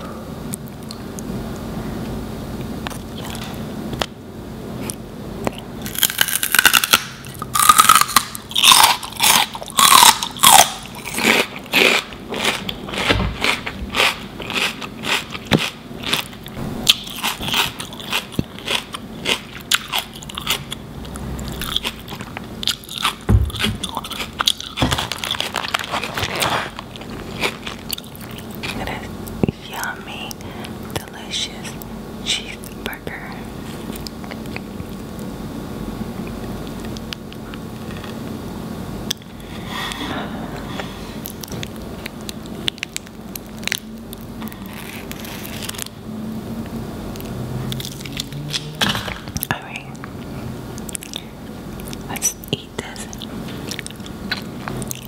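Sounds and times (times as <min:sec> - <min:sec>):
celery crunching: 0:04.9 - 0:29.4, 0:41.2 - 0:46.0
quiet chewing: 0:08.6 - 0:29.6, 0:33.6 - 0:35.3, 0:49.4 - 0:55.0.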